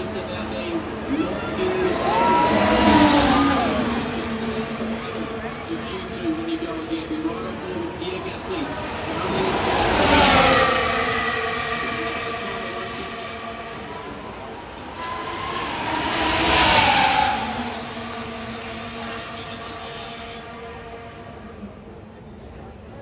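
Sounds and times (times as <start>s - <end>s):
racing cars passing by: 0.0s - 23.0s.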